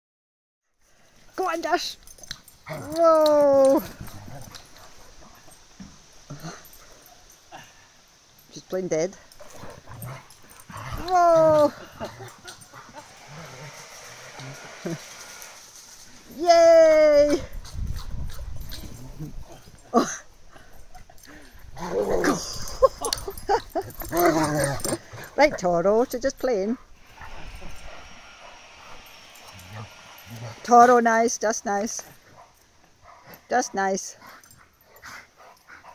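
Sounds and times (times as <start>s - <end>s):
dogs scuffling on grass: 8.5s - 19.9s
dog whining cry: 9.9s - 15.7s, 21.8s - 25.1s.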